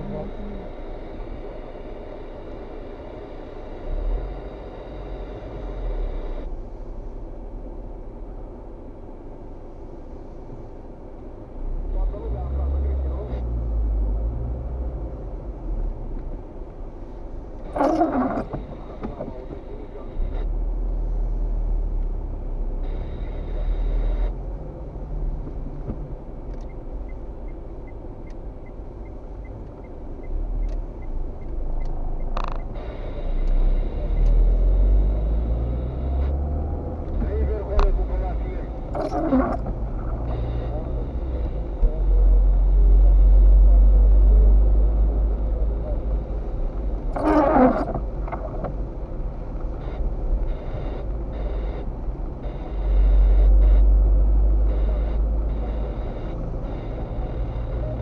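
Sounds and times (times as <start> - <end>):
car engine and tyre rumble: 0.0 - 58.0.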